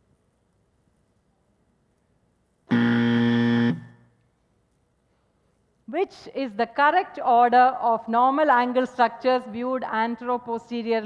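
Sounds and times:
low timer buzzer: 2.7 - 4.1.

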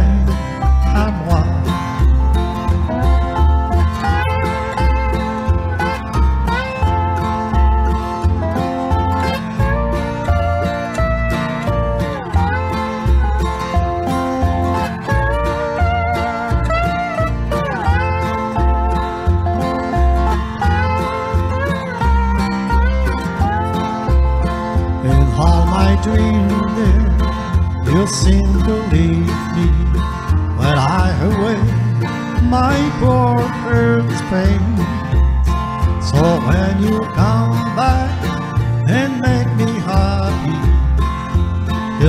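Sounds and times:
backing track with bass pulse: 0.0 - 42.0
electric guitar lead line: 0.0 - 42.0.

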